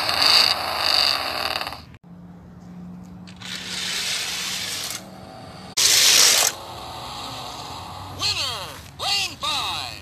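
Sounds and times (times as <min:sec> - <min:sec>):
engine revving from small speaker: 0:03.3 - 0:08.6.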